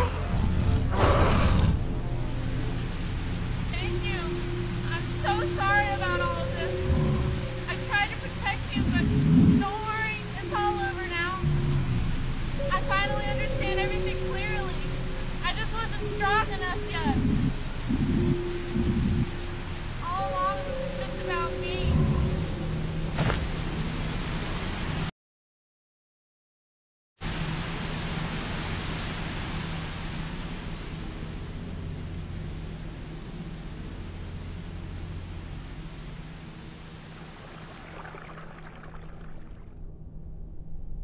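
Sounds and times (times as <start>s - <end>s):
stream water rushing: 1.3s - 25.1s, 36.8s - 39.8s
steady low hum: 1.6s - 25.1s.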